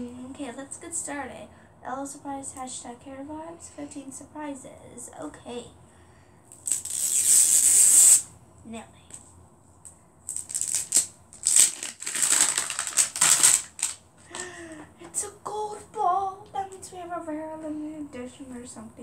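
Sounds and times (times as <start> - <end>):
girl's voice: 0.0 - 5.7, 14.8 - 19.0
wrapping being torn: 6.5 - 8.2, 10.3 - 14.0.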